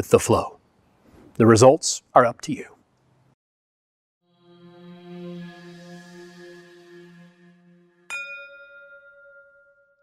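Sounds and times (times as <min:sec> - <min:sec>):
soft sustained music chord: 0:04.2 - 0:10.0
bright bell-like chime: 0:08.1 - 0:10.0.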